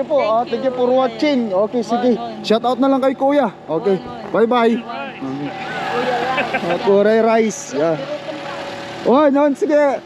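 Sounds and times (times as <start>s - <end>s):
car engine running: 0.0s - 10.0s
voices: 0.0s - 10.0s.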